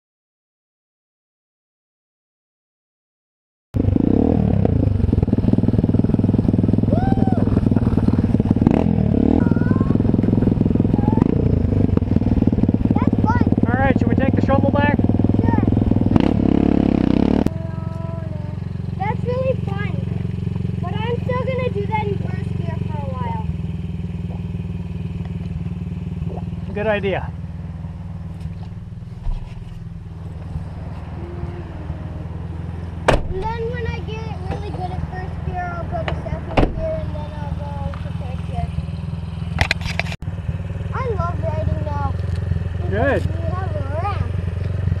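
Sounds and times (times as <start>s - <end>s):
dirt bike engine running: 3.8s - 45.0s
low engine hum: 3.8s - 45.0s
voices: 6.9s - 8.1s, 9.2s - 16.0s, 17.5s - 23.6s, 26.2s - 27.4s, 30.7s - 39.0s, 40.8s - 44.7s.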